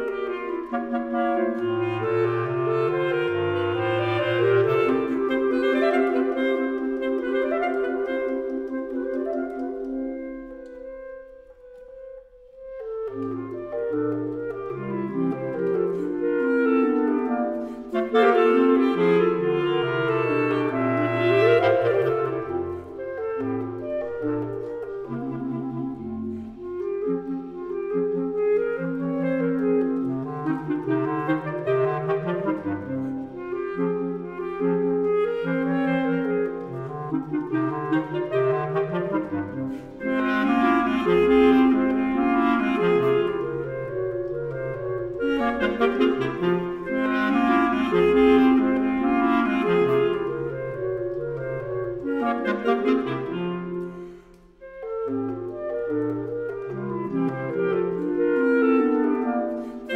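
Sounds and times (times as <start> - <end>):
woodwind trio playing: 0.0 - 59.9.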